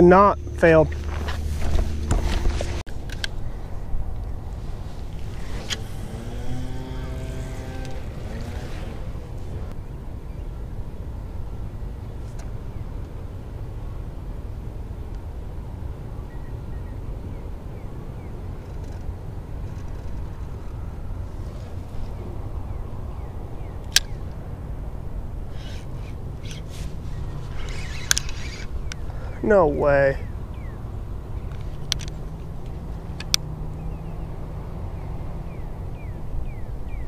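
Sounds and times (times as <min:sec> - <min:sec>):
wind rumbling on microphone: 0:00.0 - 0:37.0.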